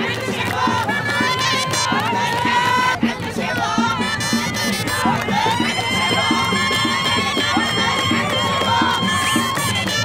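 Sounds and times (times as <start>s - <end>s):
crowd cheering and shouting: 0.0s - 10.0s
music with steady beat: 0.0s - 10.0s.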